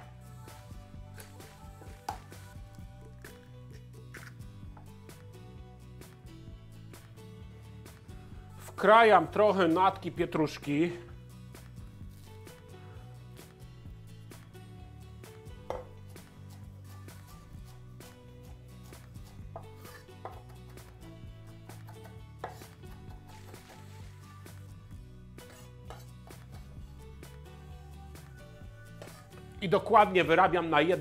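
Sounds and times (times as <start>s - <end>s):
soft background music: 0.0s - 31.0s
knife chopping on wooden board: 15.7s - 16.0s, 21.6s - 23.2s.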